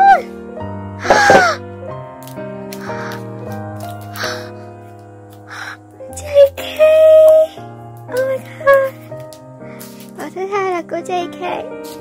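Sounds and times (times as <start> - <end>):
background piano music: 0.0 - 12.0.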